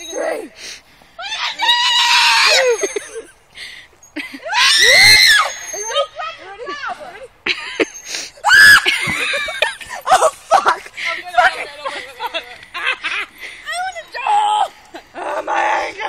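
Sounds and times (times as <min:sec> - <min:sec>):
girls screaming: 0:01.2 - 0:03.3, 0:04.3 - 0:07.0, 0:08.3 - 0:10.4.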